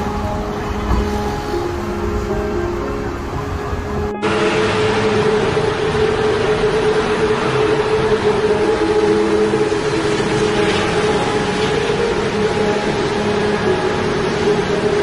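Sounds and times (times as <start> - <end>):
city traffic noise: 0.0 - 15.0.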